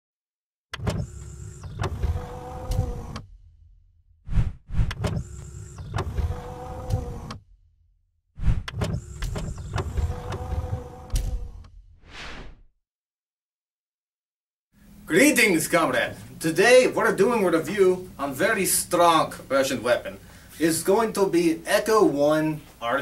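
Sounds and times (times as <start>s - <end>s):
mechanical motor whirring with clicks: 0.7s - 3.3s, 4.8s - 7.5s, 8.6s - 11.8s
whoosh: 4.3s - 4.9s, 12.0s - 12.7s.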